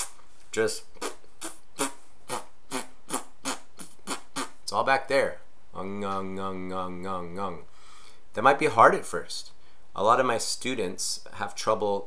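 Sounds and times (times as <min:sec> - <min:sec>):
man making throat pushes: 0:00.9 - 0:04.6
puffs of breath: 0:07.7 - 0:08.3.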